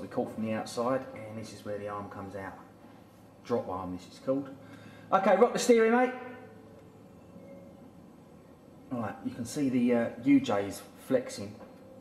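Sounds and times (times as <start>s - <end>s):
man speaking: 0.0s - 2.7s, 3.4s - 6.4s, 8.9s - 11.6s
faint steady low hum: 0.0s - 12.0s.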